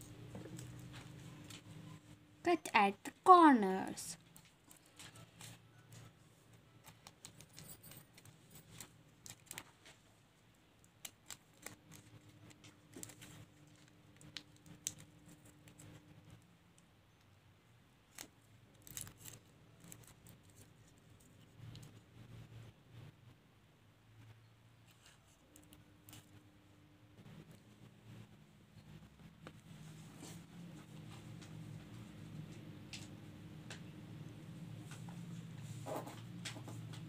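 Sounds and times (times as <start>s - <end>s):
small scissors snipping paper: 4.3s - 9.7s, 10.8s - 16.4s, 18.1s - 22.0s.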